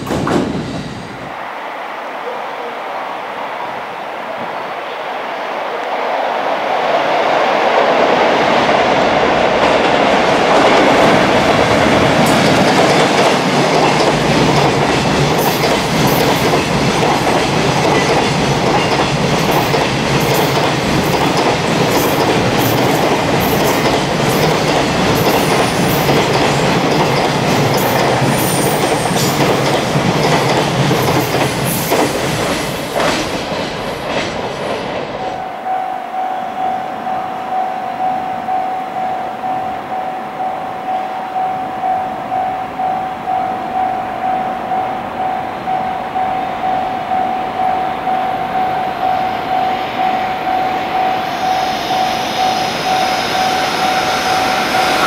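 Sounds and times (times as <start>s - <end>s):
freight train wheels rumbling on rail: 0.0s - 1.4s, 3.6s - 40.9s, 41.7s - 55.0s
steady high tone: 35.2s - 55.0s.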